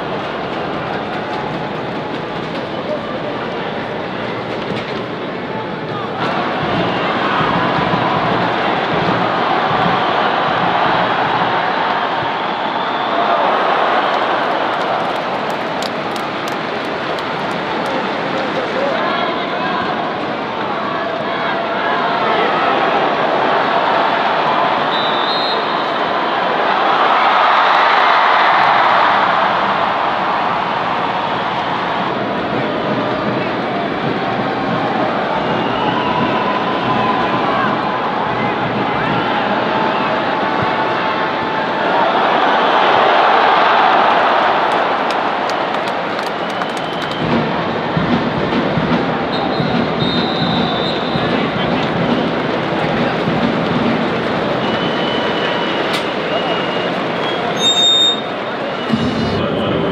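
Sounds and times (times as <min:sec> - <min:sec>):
stadium crowd voices: 0:00.0 - 0:59.9.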